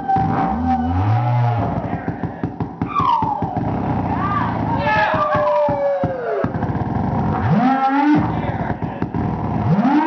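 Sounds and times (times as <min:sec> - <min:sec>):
rising moan-like calls: 0:00.0 - 0:06.5.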